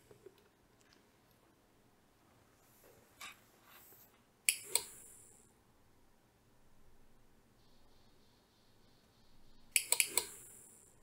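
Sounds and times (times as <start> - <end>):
sharp clicks: 9.7 - 10.6.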